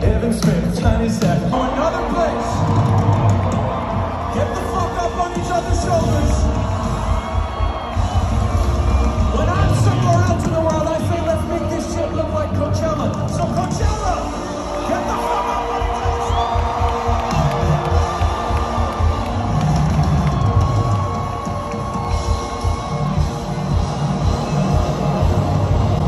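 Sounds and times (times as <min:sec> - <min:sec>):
crowd cheering: 0:00.0 - 0:26.0
live band over loudspeakers: 0:00.0 - 0:26.0.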